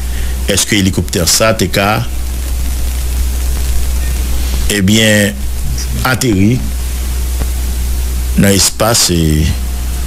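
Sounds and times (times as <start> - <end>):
low hum: 0.0 - 10.0
steady hiss: 0.0 - 10.0.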